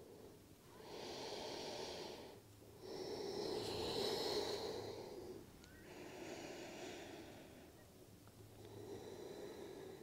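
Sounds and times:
woman breathing deeply: 0.0s - 7.8s, 8.6s - 10.0s.

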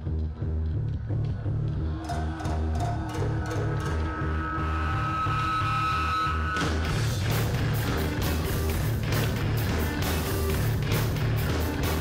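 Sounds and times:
pulsing bass riff: 0.0s - 12.0s
drums and cymbals crashing: 6.5s - 12.0s.

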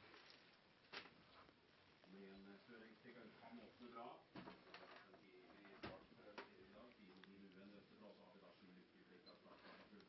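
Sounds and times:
faint background voices: 2.1s - 10.0s.

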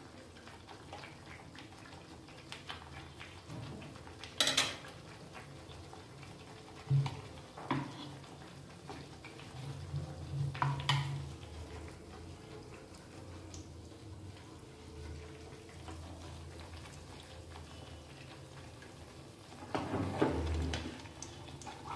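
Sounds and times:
batter frying in oil: 0.0s - 21.9s
utensil clinking on pan: 4.4s - 4.8s.

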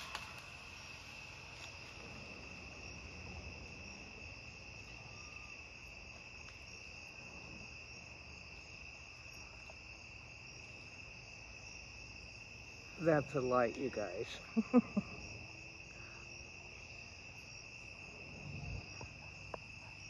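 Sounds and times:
crickets trilling: 0.0s - 20.0s
higher cricket chirp: 0.0s - 20.0s.

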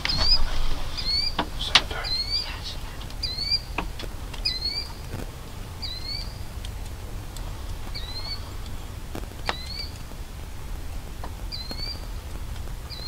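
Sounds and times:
bird call: 0.0s - 5.1s, 5.8s - 6.4s, 7.9s - 8.6s, 9.4s - 10.0s, 11.5s - 12.1s
low steady rumble: 0.0s - 13.0s
sharp ticks: 5.8s - 8.8s, 9.4s - 10.1s.

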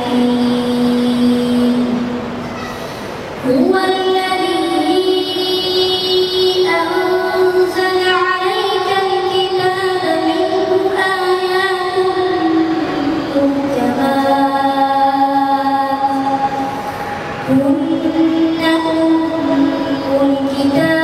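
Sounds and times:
boy chanting melodically: 0.0s - 21.0s.

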